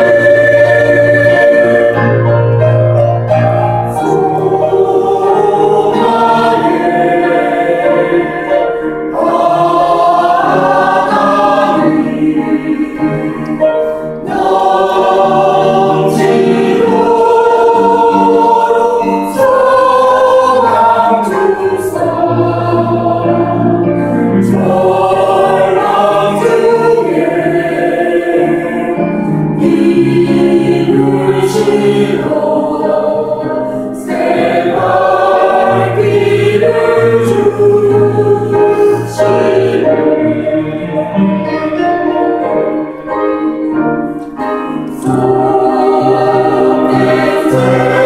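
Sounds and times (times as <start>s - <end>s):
mixed choir singing a hymn: 0.0s - 48.0s.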